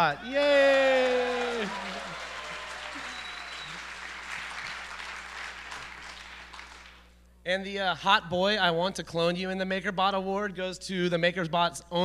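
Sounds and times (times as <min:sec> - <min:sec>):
audience applauding: 0:00.6 - 0:07.1.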